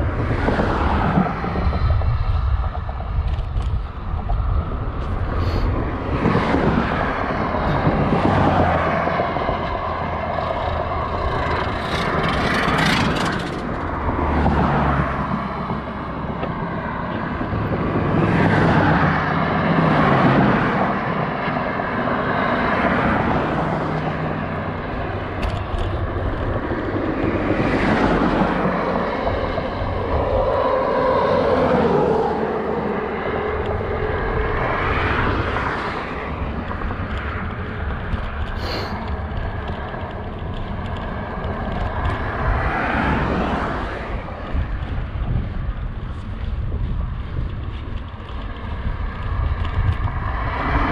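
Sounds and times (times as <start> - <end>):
road and wind noise: 0.0 - 50.9
vehicles passing: 0.0 - 50.9.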